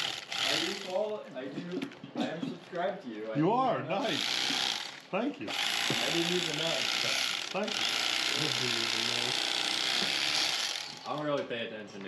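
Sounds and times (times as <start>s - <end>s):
electric knife buzzing: 0.0s - 1.0s, 4.0s - 11.2s.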